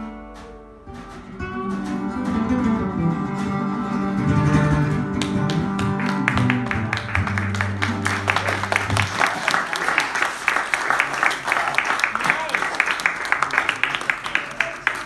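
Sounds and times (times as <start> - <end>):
acoustic and electric guitars playing: 0.0 - 9.6.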